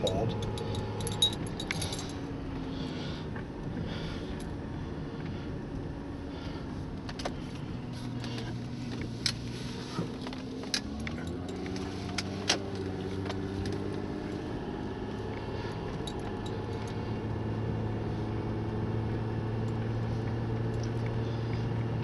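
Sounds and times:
car engine and road noise: 0.0s - 22.0s
rattles inside car: 0.0s - 22.0s.

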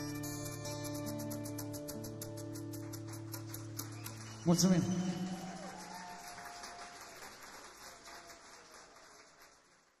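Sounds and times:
audience applause: 2.8s - 10.0s.

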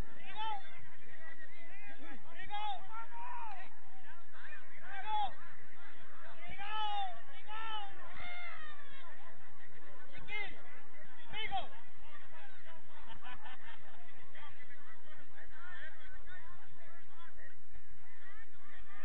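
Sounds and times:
crowd chatter: 0.0s - 19.0s
people shouting and calling out: 0.0s - 19.0s.

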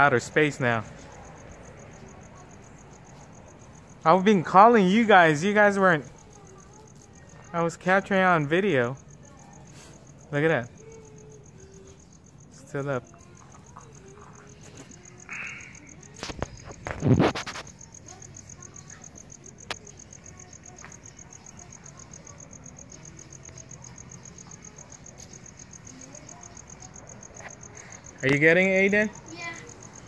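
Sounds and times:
crickets chirping: 0.0s - 30.0s.

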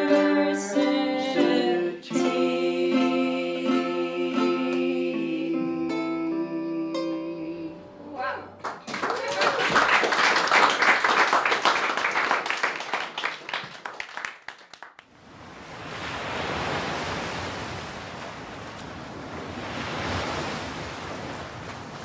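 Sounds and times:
audience applause: 8.6s - 15.0s
sea waves washing: 15.1s - 22.0s.

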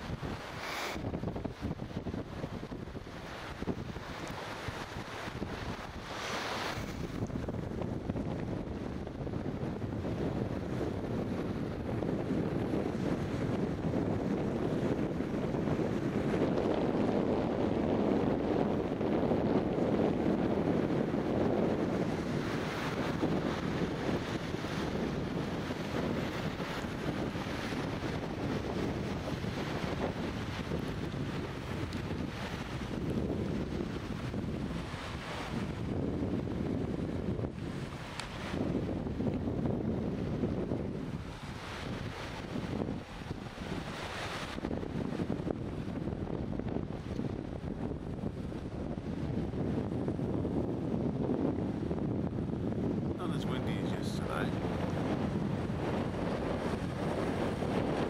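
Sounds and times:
wind over microphone: 0.0s - 58.0s.

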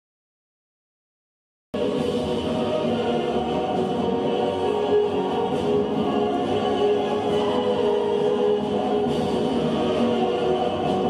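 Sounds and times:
choir singing held chords: 1.8s - 11.0s.

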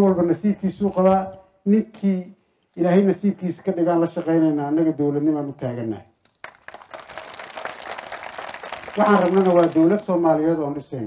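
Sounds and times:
audience applauding: 6.4s - 10.2s.

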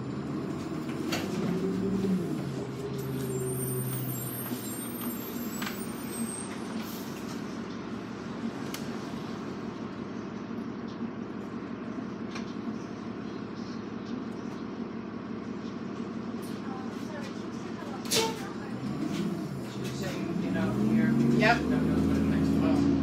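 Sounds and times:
bus engine running: 0.0s - 23.0s.

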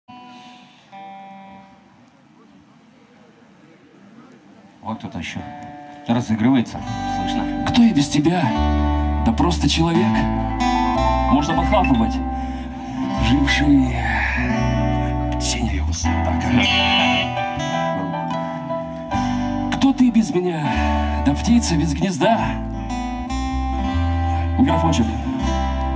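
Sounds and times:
electric lead guitar: 0.1s - 2.4s, 5.2s - 25.9s
low murmur of voices: 0.1s - 19.8s
keyboard: 4.9s - 25.9s
sustained instrument notes: 5.4s - 21.9s.

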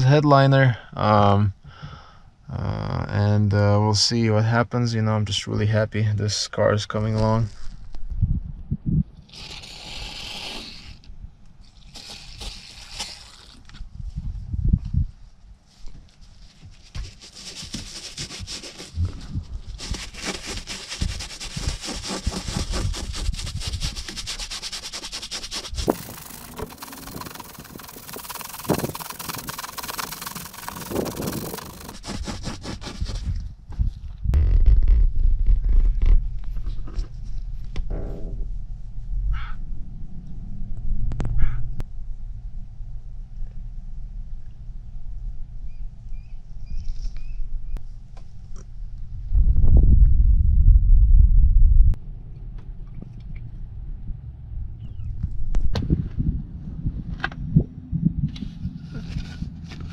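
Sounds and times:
toothbrush scrubbing fabric: 16.7s - 33.3s
aerosol spray hissing: 25.7s - 32.1s
loud low rumble: 34.2s - 46.0s, 48.8s - 59.9s.

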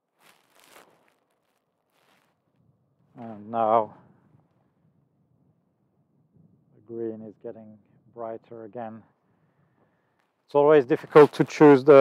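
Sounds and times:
faint short rustle: 0.0s - 3.4s.

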